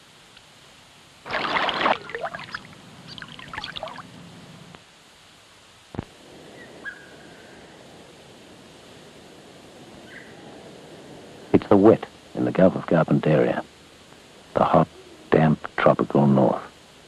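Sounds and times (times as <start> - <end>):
outdoor hiss: 0.0 - 17.0
crocodile sloshing through water: 1.3 - 4.2
water splashing and dribbling: 1.3 - 4.2
faint bird chirp: 2.4 - 4.0, 6.5 - 7.6, 10.0 - 10.4, 14.9 - 15.4.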